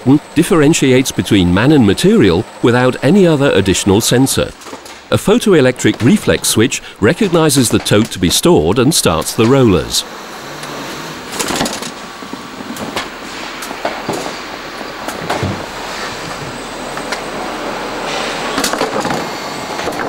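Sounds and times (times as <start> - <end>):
roller conveyor running: 0.0 - 20.0.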